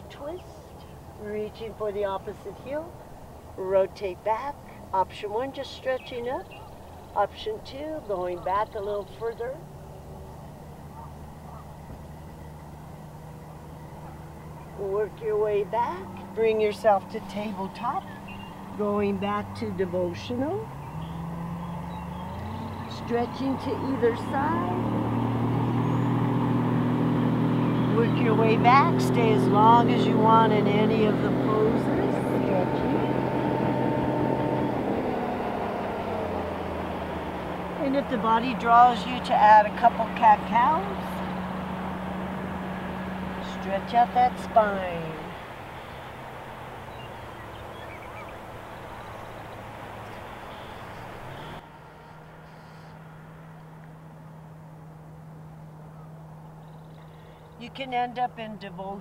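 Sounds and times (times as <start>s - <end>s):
distant engine hum: 0.0s - 59.0s
faint bird calls: 9.7s - 14.8s, 45.3s - 53.1s, 55.8s - 57.6s.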